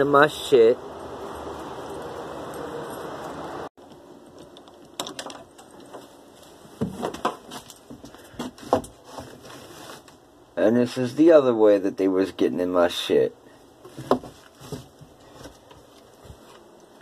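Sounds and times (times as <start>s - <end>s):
handling knocks and rustles: 2.6s - 10.2s, 13.8s - 17.0s.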